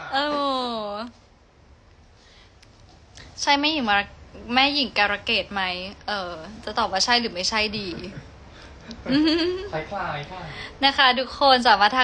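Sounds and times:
woman laughing: 0:08.9 - 0:09.7.

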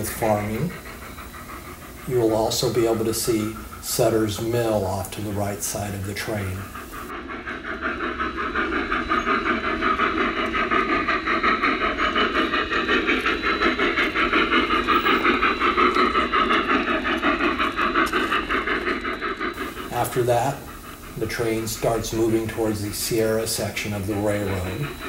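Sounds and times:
model steam locomotive chuffing: 0:00.0 - 0:25.0
steam hissing: 0:00.0 - 0:25.0.

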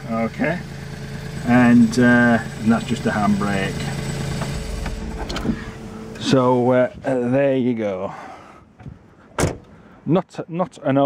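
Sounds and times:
diesel engine idling: 0:00.0 - 0:10.0.

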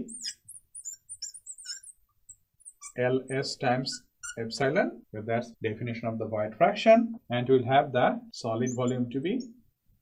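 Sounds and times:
marker squeaking on glass: 0:00.0 - 0:04.7, 0:08.6 - 0:09.6.

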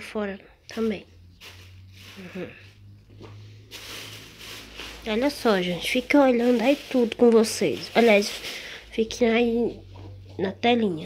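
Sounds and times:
plastic bag rustling: 0:00.7 - 0:09.9.

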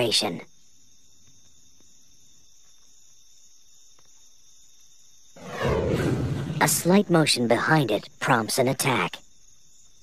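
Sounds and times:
crickets chirring: 0:00.0 - 0:10.0
loud deep sound: 0:05.4 - 0:07.2.

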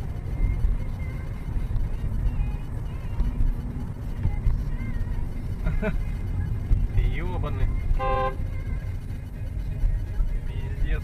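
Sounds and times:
car engine and road noise: 0:00.0 - 0:11.0
faint music: 0:00.0 - 0:11.0.

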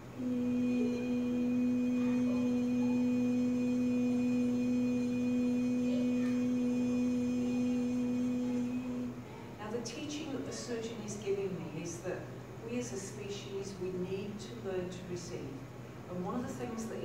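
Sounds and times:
woman singing long note: 0:00.0 - 0:09.6.

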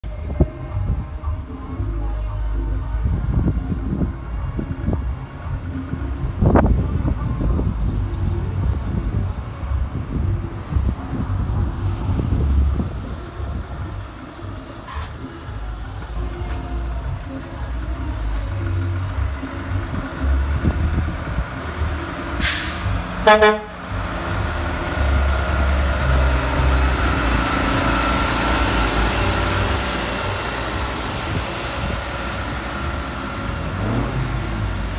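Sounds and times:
diesel truck engine rumbling: 0:00.0 - 0:34.9
short sharp engine burst: 0:22.4 - 0:23.7.

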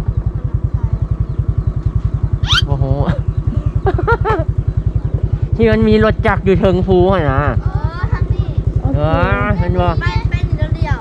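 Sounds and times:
small motorbike engine throbbing: 0:00.0 - 0:11.0.

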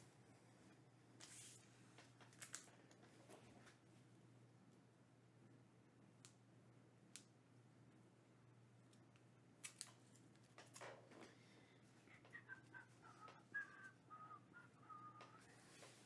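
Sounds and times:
person whistling a tune: 0:12.1 - 0:16.0.

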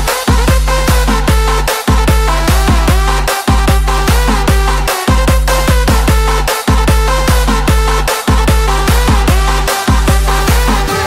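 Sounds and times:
electronic dance music: 0:00.0 - 0:11.0
hard kick drum: 0:00.0 - 0:11.0
heavy bass: 0:00.0 - 0:11.0.

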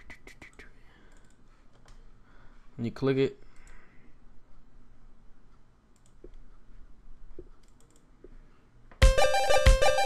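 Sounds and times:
faint computer mouse clicks: 0:00.5 - 0:02.0, 0:03.5 - 0:03.8, 0:06.0 - 0:06.4, 0:07.3 - 0:08.4.

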